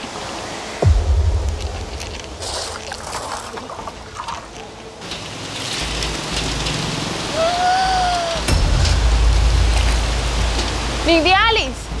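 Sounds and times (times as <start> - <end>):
stream water rushing and splashing: 0.0 - 12.0
deep rumble: 0.8 - 4.7.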